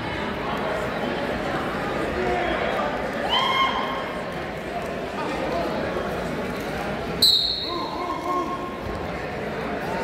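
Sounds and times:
spectators' voices: 0.0 - 10.0
referee whistle blast: 7.2 - 7.9.

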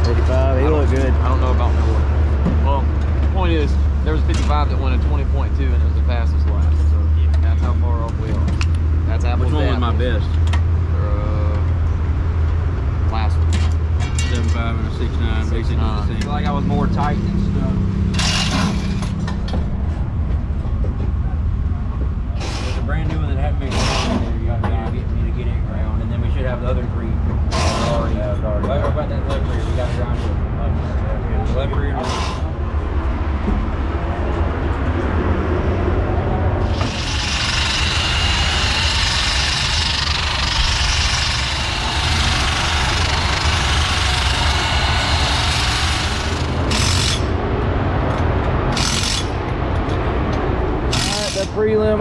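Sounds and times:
power tool whirring: 18.1 - 19.1, 36.6 - 47.4, 48.7 - 49.4, 50.9 - 51.6.

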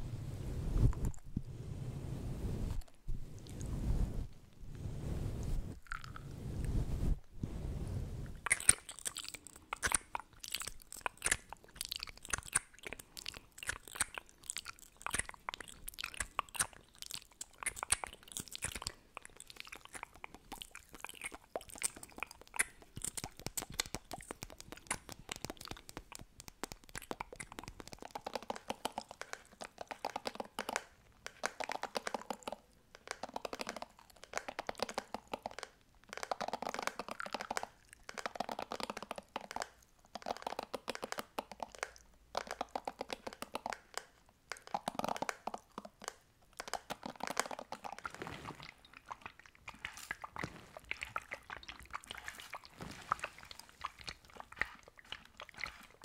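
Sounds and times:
wet lip smacking: 8.3 - 56.0
small rapid clicks: 21.9 - 48.0.

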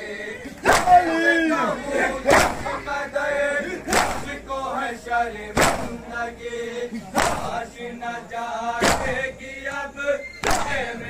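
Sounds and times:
men chanting a lament: 0.0 - 11.0
hands beating on chests: 0.7 - 1.0.

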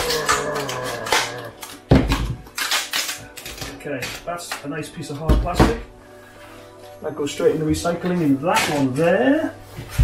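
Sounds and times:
plastic casing cracking and snapping: 0.0 - 4.7.

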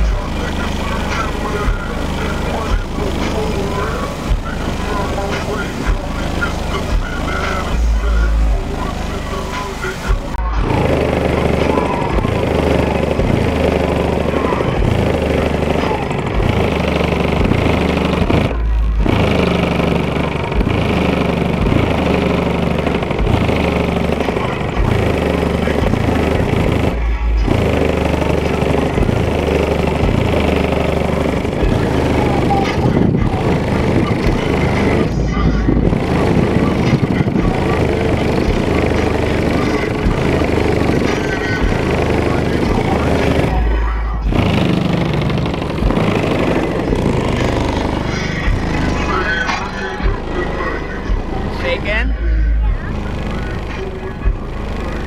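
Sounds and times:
bass-heavy music from car speakers: 0.0 - 55.0.

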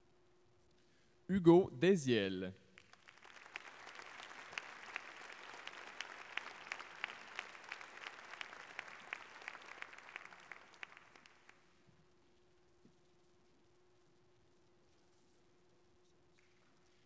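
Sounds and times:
audience applause: 2.8 - 11.6.

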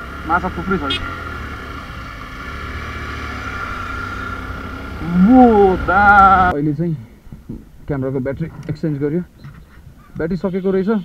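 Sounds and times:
motorcycle engine cruising: 0.0 - 6.5.

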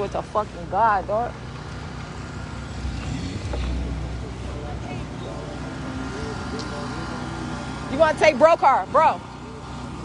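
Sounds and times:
low rumble of traffic: 0.0 - 10.0
wind: 0.0 - 10.0.

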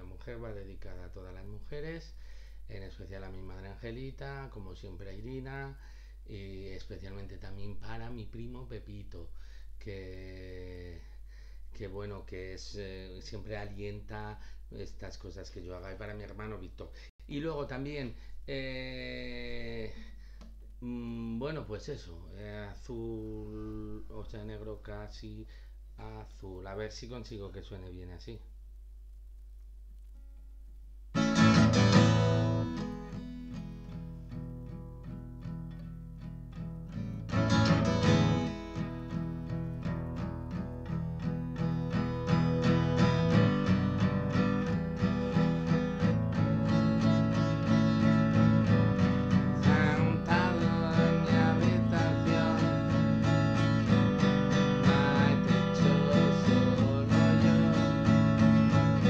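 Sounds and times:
acoustic guitar strumming: 31.1 - 59.0.

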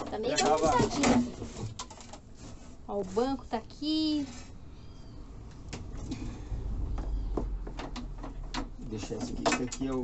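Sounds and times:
low rumble: 5.2 - 8.5.

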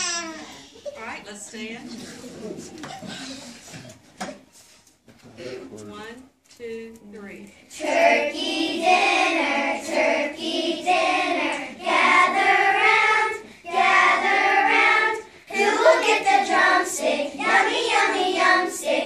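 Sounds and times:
children singing together: 7.7 - 19.0.

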